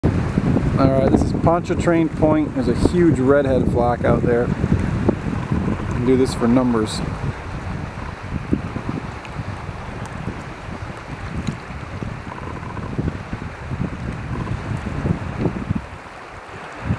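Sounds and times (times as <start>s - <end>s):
choppy water: 0.0s - 16.9s
rush of wind: 0.0s - 16.9s
wind buffeting microphone: 0.0s - 16.9s.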